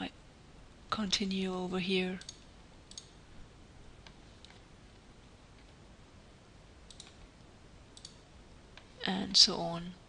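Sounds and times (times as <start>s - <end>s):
computer mouse clicks: 2.2s - 3.2s, 4.0s - 4.6s, 6.9s - 7.2s, 8.0s - 8.2s.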